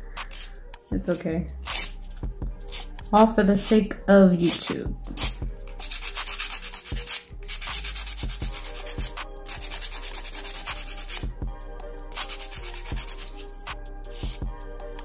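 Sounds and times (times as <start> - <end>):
nail file rasping: 0.2 - 0.6, 1.5 - 3.8, 4.4 - 11.3, 12.1 - 14.5.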